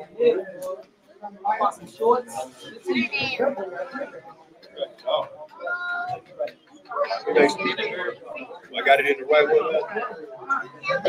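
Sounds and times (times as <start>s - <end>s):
voices of people in a room: 0.0s - 11.0s.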